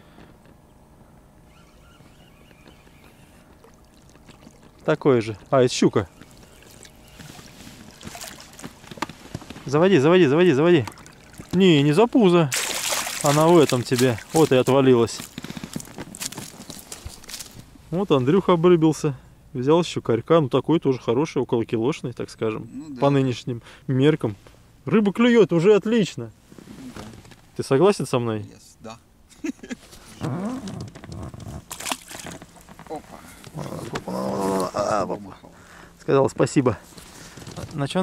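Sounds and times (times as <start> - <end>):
man murmuring and grunting: 22.6 - 23.1, 32.9 - 35.5.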